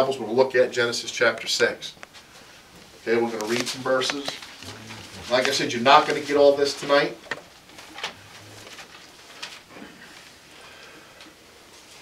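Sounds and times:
paper pages turning: 0:03.3 - 0:09.7.

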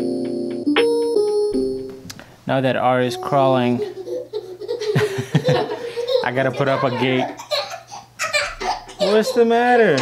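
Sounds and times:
man laughing: 0:03.2 - 0:07.5, 0:09.0 - 0:10.0.

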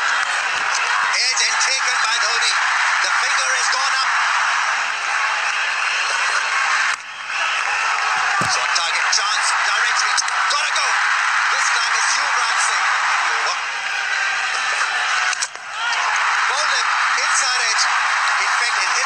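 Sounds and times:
stadium crowd cheering: 0:00.0 - 0:19.0.

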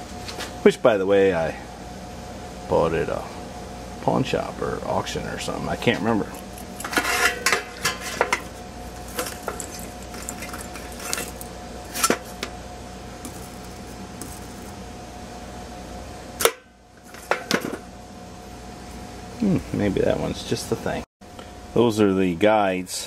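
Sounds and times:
steady background hum: 0:00.0 - 0:23.0
wire brushes clinking: 0:06.3 - 0:12.5.

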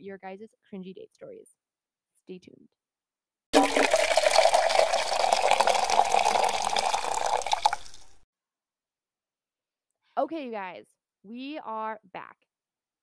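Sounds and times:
liquid pouring: 0:03.6 - 0:08.2.

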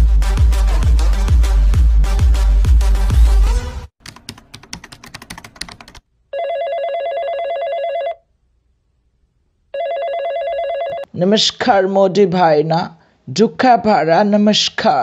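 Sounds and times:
loud beat-driven music: 0:00.0 - 0:03.6
trilling telephone ring: 0:06.3 - 0:08.2, 0:09.8 - 0:11.1.

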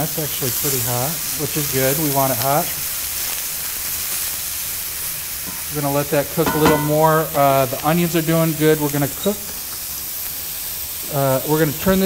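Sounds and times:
mushrooms sizzling in a skillet: 0:00.0 - 0:12.0.

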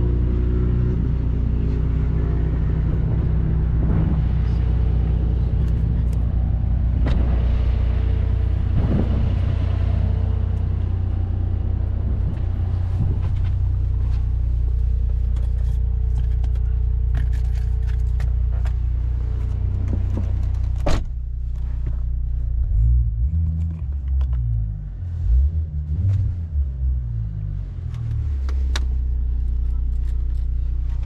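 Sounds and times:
deep low hum: 0:00.0 - 0:31.0
road and engine rumble in cabin: 0:00.0 - 0:31.0.

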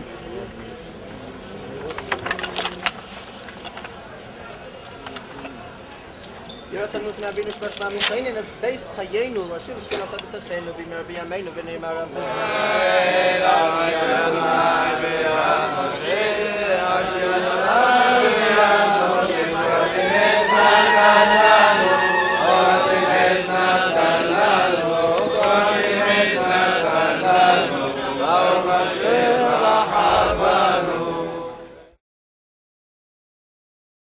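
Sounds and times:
men chanting prayer in unison: 0:11.8 - 0:31.8.

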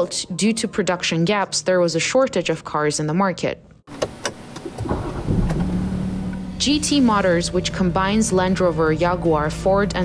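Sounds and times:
car engine starting and idling: 0:03.9 - 0:10.0.

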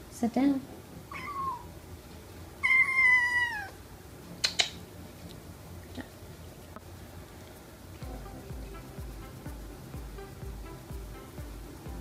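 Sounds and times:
kitten mewing: 0:01.1 - 0:01.7, 0:02.6 - 0:03.8
sharp clicks: 0:04.4 - 0:04.8.

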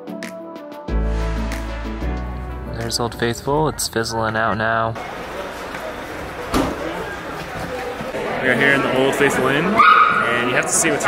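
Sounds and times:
crowd chatter: 0:03.0 - 0:11.0.

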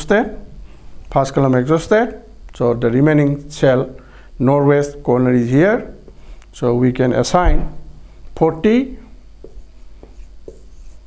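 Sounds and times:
marker pen on whiteboard: 0:08.4 - 0:11.0.

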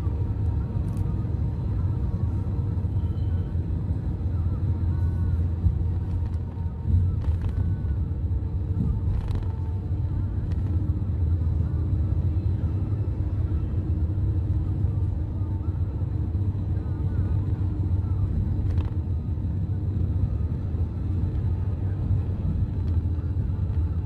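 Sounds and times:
car cabin road rumble: 0:00.0 - 0:24.0.

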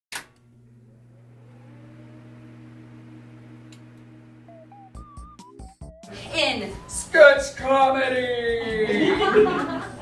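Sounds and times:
faint rising tone: 0:00.6 - 0:07.1.

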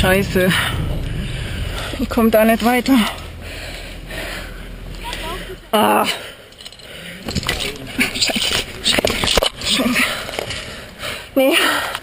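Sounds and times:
strained breathing: 0:00.4 - 0:02.2, 0:03.0 - 0:07.3, 0:09.7 - 0:12.0.

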